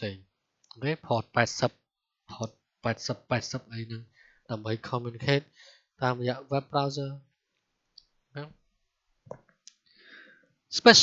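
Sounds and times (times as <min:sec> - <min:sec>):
person lecturing: 0:00.0 - 0:01.7, 0:02.3 - 0:07.2, 0:10.7 - 0:11.0.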